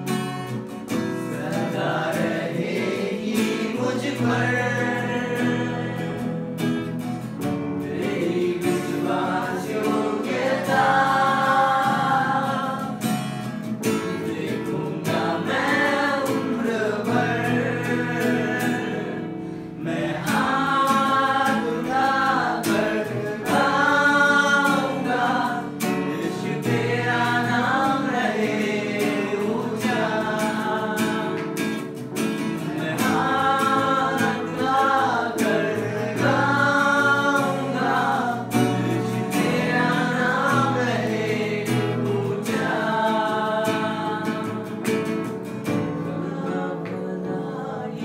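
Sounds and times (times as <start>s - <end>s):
keyboard accompaniment: 0.0s - 48.0s
strummed acoustic guitar: 0.0s - 48.0s
person singing worship song: 1.2s - 48.0s.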